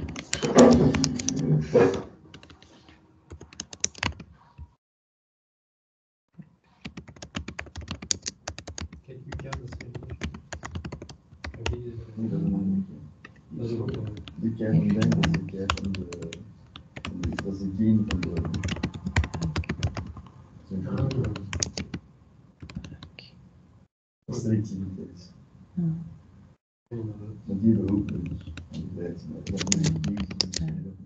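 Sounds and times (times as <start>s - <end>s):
typing on keyboard: 0.0s - 2.7s, 3.3s - 4.3s, 6.8s - 11.8s, 13.9s - 20.3s, 21.0s - 22.0s, 22.6s - 23.1s, 29.4s - 30.8s.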